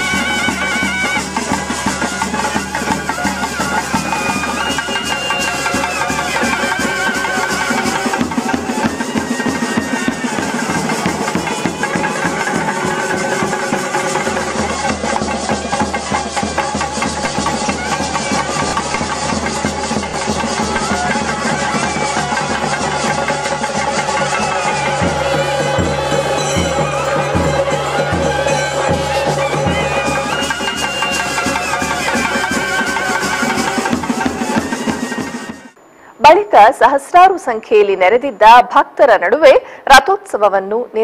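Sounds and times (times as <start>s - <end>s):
fast drumming: 0.0s - 35.8s
cymbals: 0.0s - 35.9s
wavering wind instrument melody: 0.0s - 35.9s.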